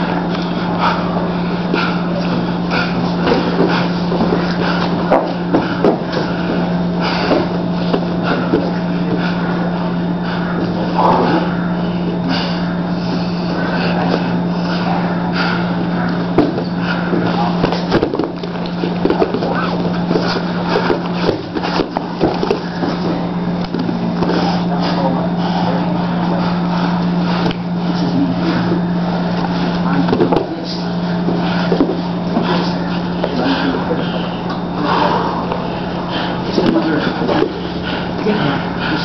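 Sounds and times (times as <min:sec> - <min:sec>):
indistinct talking: 0:00.0 - 0:39.0
steady low hum: 0:00.0 - 0:39.0.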